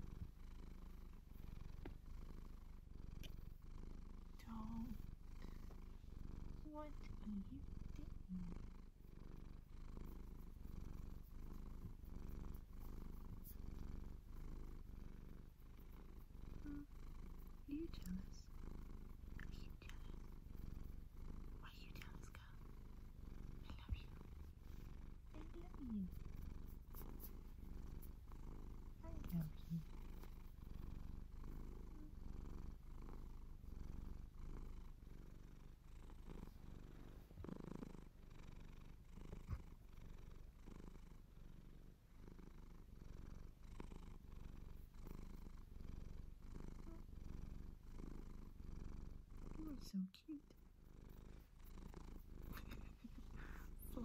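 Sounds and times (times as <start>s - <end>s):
cat purring: 0.0s - 54.0s
fingers rustling through fur: 25.4s - 30.6s.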